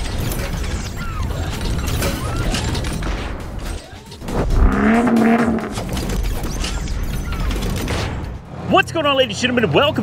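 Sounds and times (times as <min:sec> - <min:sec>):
low rumble: 0:04.2 - 0:06.1.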